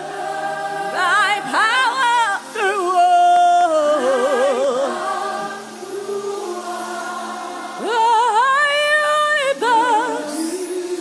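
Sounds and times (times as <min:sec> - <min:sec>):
choir singing gospel music: 0:00.0 - 0:11.0.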